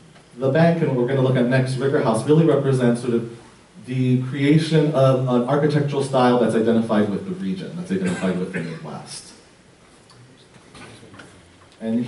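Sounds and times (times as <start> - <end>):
man speaking: 0.4 - 9.5, 10.9 - 12.0.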